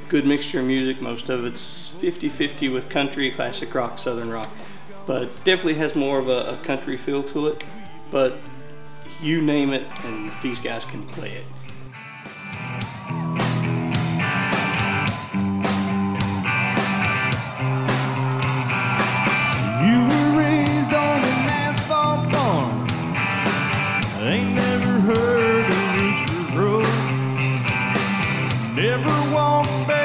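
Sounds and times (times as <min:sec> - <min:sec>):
country-rock band playing: 0:04.5 - 0:30.0
electric guitar lead bending notes: 0:09.1 - 0:30.0.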